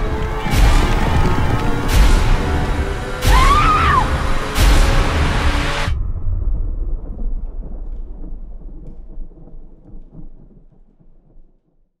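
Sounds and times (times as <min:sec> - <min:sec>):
low rumble with crackles: 0:00.0 - 0:03.4, 0:04.5 - 0:12.0
music: 0:00.0 - 0:12.0.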